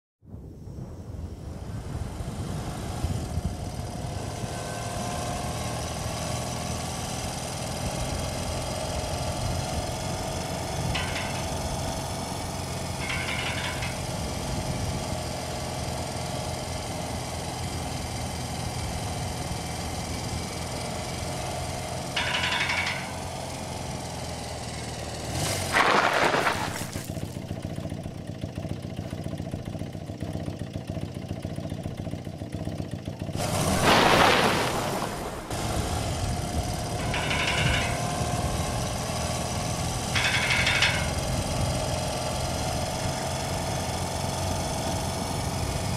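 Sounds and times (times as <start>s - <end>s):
motorcycle engine running: 1.2s - 45.9s.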